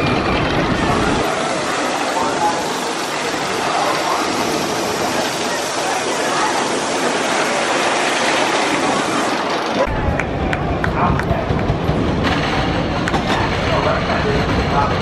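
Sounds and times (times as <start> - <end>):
people's voices: 0.0 - 15.0
roller coaster rushing roar: 0.0 - 15.0.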